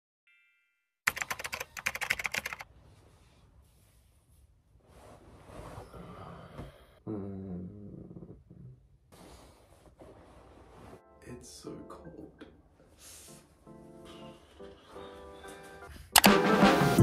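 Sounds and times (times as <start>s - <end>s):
keyboard typing clicks: 1.1s - 2.6s, 16.2s - 16.4s
person wordless vocal sound: 7.0s - 8.8s.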